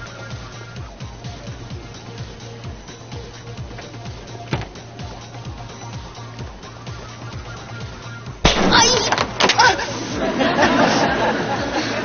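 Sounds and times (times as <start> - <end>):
background music with steady beat: 0.0 - 12.0
sudden loud bang: 8.4 - 9.4
woman shrieking: 8.6 - 10.0.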